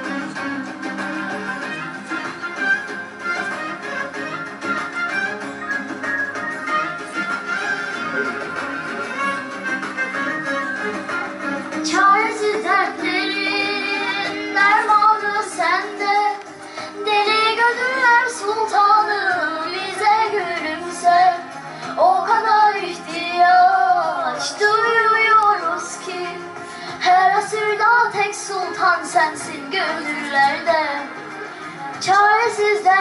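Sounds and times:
girl singing hymn into microphone: 0:11.8 - 0:16.4, 0:17.0 - 0:21.4, 0:22.0 - 0:26.4, 0:27.0 - 0:31.1, 0:32.0 - 0:33.0.

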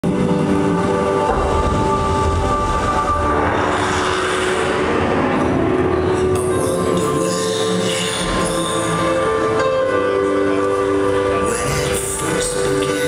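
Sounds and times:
low rumble: 0:00.0 - 0:09.1
rushing noise: 0:00.0 - 0:09.6
sustained chords over loudspeakers: 0:00.0 - 0:13.0.

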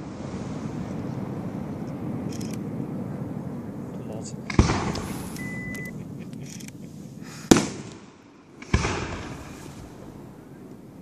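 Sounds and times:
firework shells bursting: 0:04.5 - 0:10.4.

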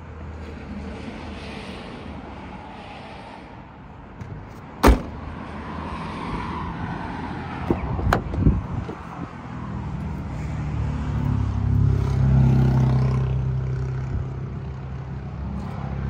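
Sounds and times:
traffic noise: 0:00.0 - 0:16.0
car tailgate slamming shut: 0:04.2 - 0:05.3.

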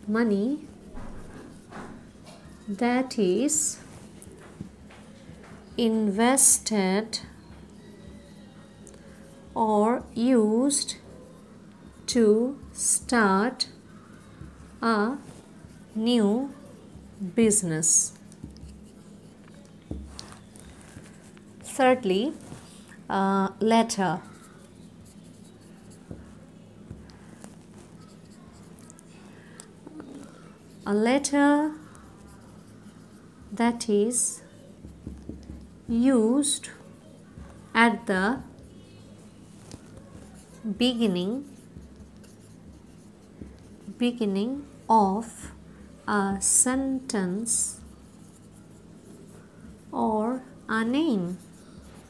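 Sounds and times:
marker pen writing on whiteboard: 0:00.4 - 0:22.9, 0:23.8 - 0:45.6, 0:46.4 - 0:52.0.

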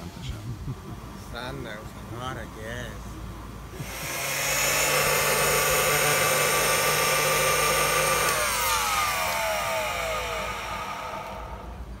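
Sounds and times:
drink mixer motor whining: 0:03.8 - 0:12.0.

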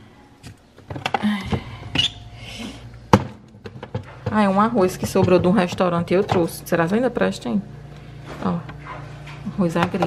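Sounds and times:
plastic containers clicking and knocking: 0:03.1 - 0:06.6, 0:09.7 - 0:10.0.

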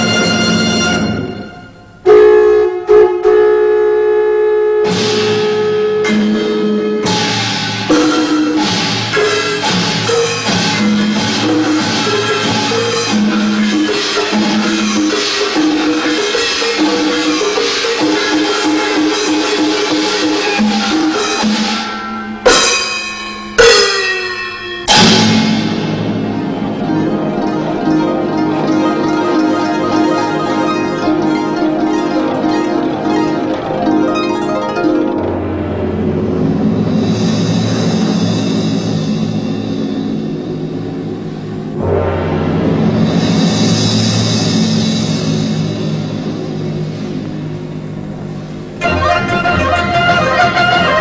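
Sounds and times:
tuned drums playing pattern: 0:00.0 - 0:02.1
percussion crash: 0:00.0 - 0:02.2, 0:04.8 - 0:51.0
drum and wind ensemble music: 0:00.0 - 0:02.3, 0:04.8 - 0:24.2, 0:24.8 - 0:51.0
winds playing long held note: 0:00.0 - 0:04.8, 0:48.8 - 0:51.0.

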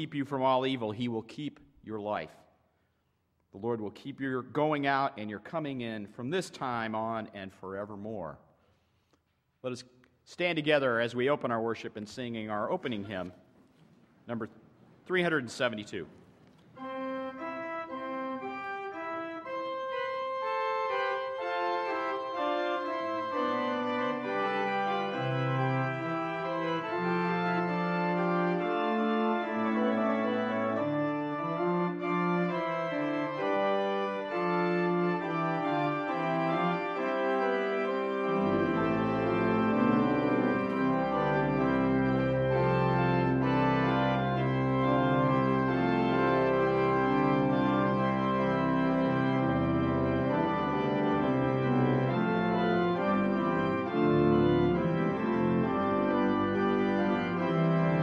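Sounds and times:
church organ playing a hymn: 0:00.0 - 0:08.6, 0:09.6 - 0:13.5, 0:14.2 - 0:58.0.

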